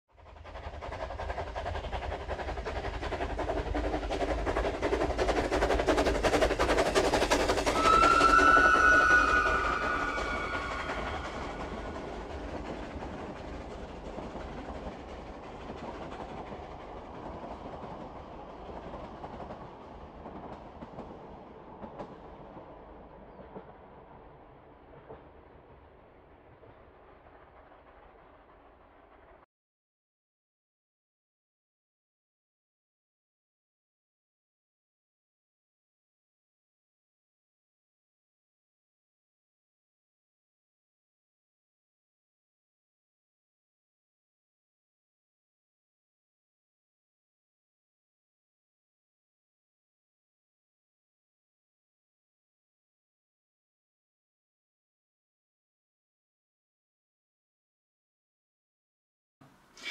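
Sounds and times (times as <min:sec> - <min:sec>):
train rumble and wheel clatter: 0:00.1 - 0:29.4
train whistle: 0:07.7 - 0:11.7.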